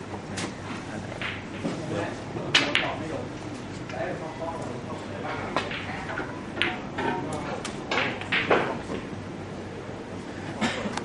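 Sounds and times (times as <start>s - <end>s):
snooker balls clacking: 1.1s - 3.3s, 4.6s - 9.2s.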